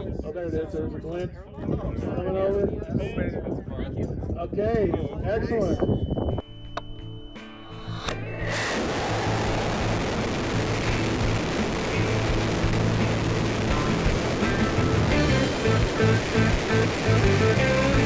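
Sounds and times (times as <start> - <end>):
background music: 6.4 - 18.0
air rushing past rocket: 8.2 - 16.8.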